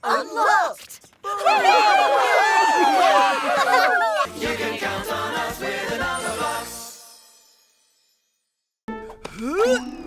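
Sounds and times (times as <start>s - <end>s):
cartoon voices cheering: 1.2s - 4.4s.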